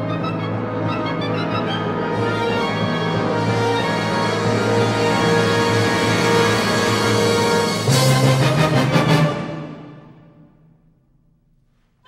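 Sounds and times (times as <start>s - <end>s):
wind ensemble playing chords: 0.0s - 10.5s.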